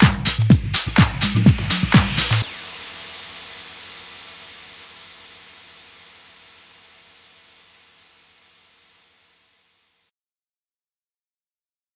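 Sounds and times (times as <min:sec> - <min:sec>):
hissing white noise wash: 0:00.3 - 0:10.1.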